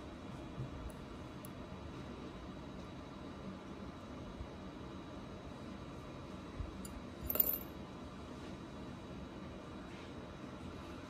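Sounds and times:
metal rings clinking: 7.2 - 7.7.

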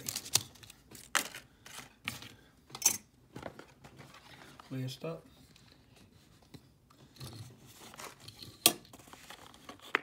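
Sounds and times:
plastic packaging handled: 0.0 - 2.4.

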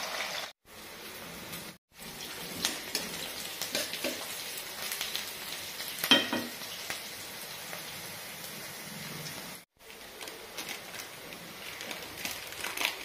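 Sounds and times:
onions sizzling in hot oil: 0.0 - 13.0.

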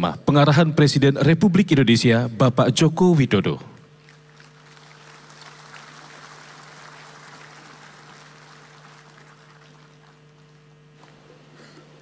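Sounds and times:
electrical hum: 0.0 - 12.0
audience applauding: 4.0 - 10.9.

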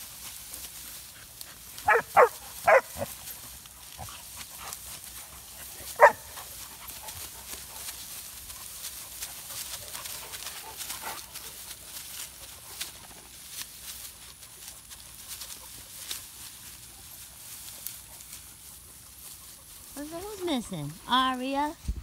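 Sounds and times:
dogs yelping: 1.6 - 3.4, 5.6 - 7.6.

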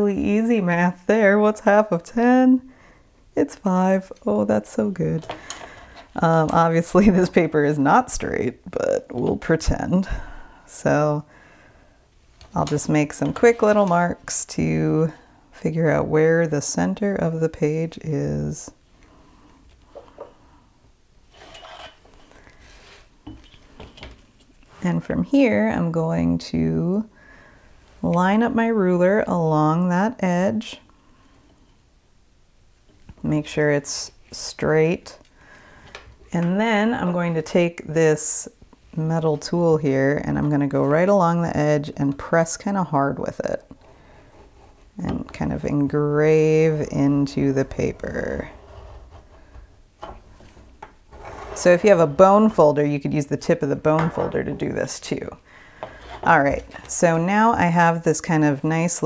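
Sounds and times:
steel ruler scraping over paper: 21.3 - 22.3.

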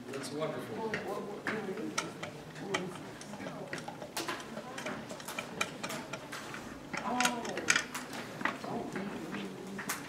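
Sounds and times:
light clicks and taps: 0.9 - 10.0.

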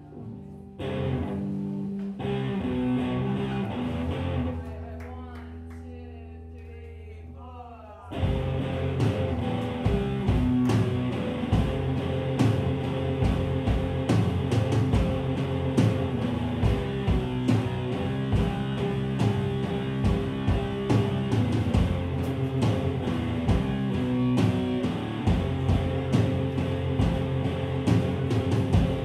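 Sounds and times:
electric guitar: 0.0 - 5.9, 8.1 - 29.0
bass guitar: 0.0 - 29.0
drum kit beating: 8.1 - 29.0.

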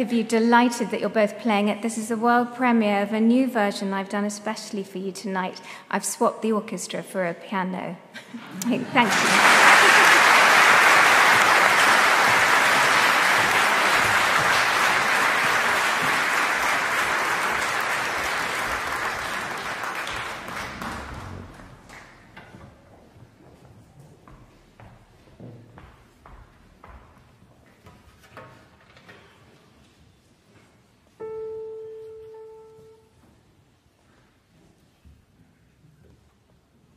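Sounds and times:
audience applause: 8.8 - 22.4.

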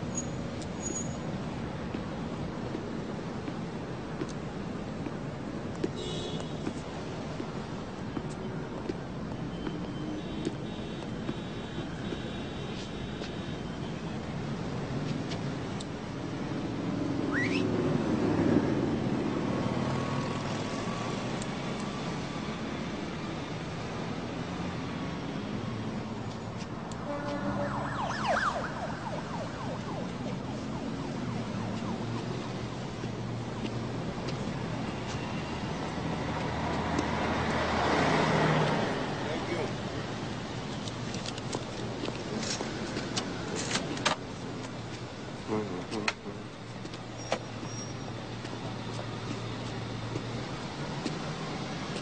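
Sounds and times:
city street traffic: 0.0 - 52.0
rising whistle-like tone: 17.3 - 17.8
car passing by: 27.0 - 32.3, 34.6 - 40.0.

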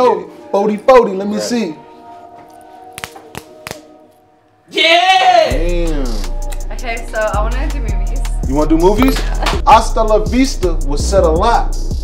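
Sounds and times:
background music steady chord: 0.0 - 4.8, 5.4 - 12.0
sharp hand slaps: 3.0 - 3.9, 9.0 - 9.6.

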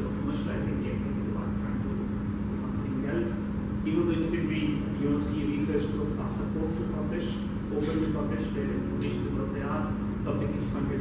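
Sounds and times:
low droning room hum: 0.0 - 11.0.

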